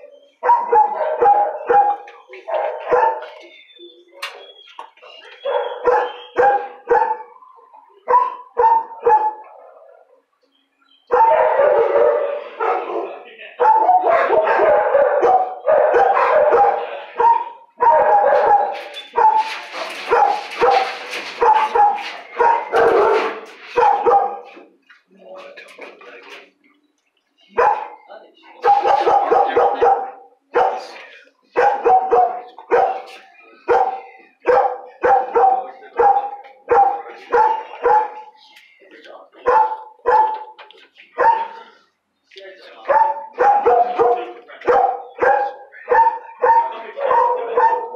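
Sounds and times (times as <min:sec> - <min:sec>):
dogs barking: 0:00.0 - 0:09.8, 0:11.0 - 0:24.7, 0:27.5 - 0:38.4, 0:39.4 - 0:41.9, 0:42.8 - 0:47.9.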